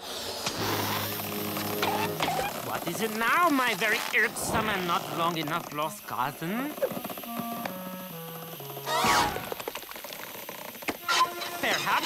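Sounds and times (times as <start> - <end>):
gas hissing into balloon: 0.0 - 12.0.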